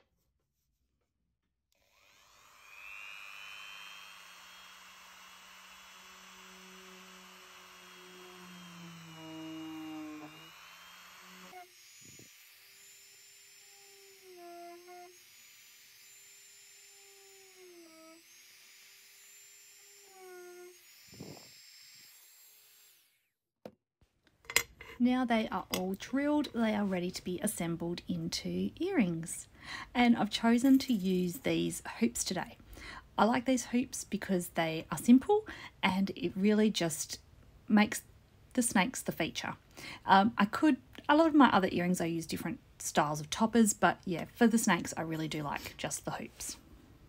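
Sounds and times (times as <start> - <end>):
rotary tool whining: 1.8 - 23.2.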